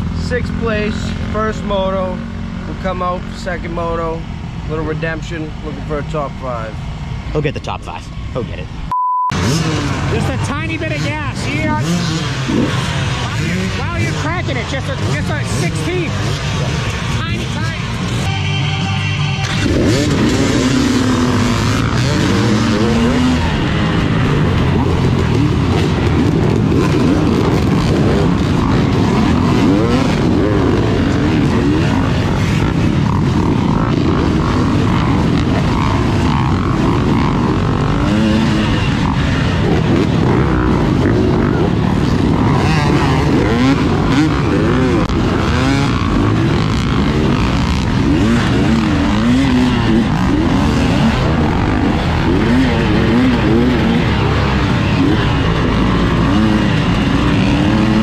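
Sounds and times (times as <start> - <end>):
dirt bike engine revving: 0.0 - 7.4, 9.3 - 58.0
other dirt bikes running: 0.0 - 8.7, 9.3 - 58.0.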